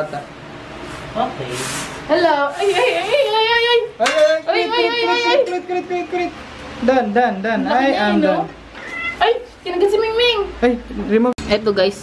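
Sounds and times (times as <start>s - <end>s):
woman talking: 2.1s - 5.6s, 9.1s - 12.0s
cat meowing: 8.7s - 9.5s.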